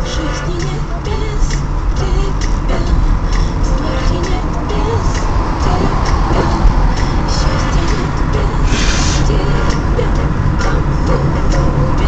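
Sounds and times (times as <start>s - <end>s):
car road and engine rumble: 0.0s - 12.0s
music playing: 0.0s - 12.0s.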